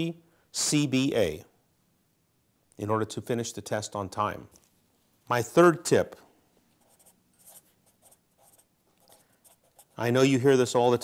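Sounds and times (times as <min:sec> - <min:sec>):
marker scratching on paper: 0:06.8 - 0:10.0.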